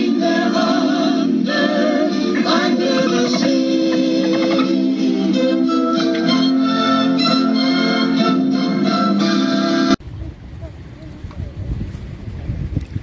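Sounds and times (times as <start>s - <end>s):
background music with held chords: 0.0s - 10.0s.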